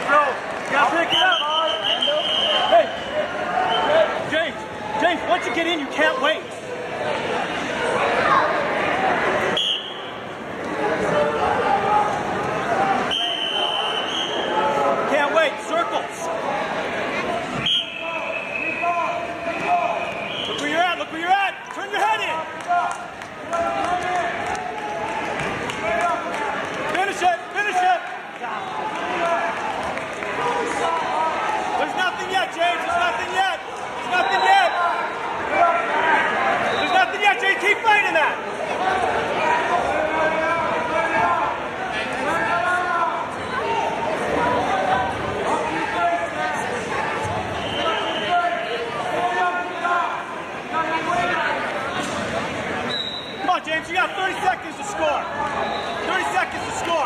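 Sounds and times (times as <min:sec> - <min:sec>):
people shouting in a gymnasium: 0:00.0 - 0:57.0.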